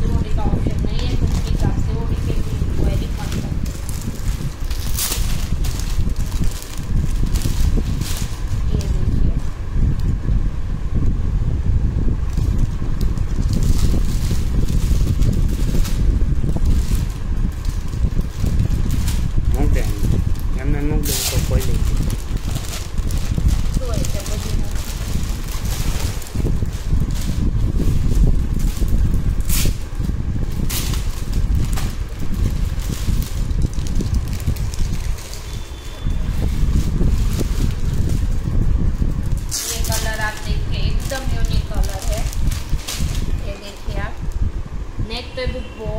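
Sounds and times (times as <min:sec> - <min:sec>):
plastic packaging rustling: 0:00.0 - 0:09.5, 0:12.3 - 0:44.1
low rumble: 0:00.0 - 0:45.5
wind buffeting microphone: 0:00.0 - 0:45.9.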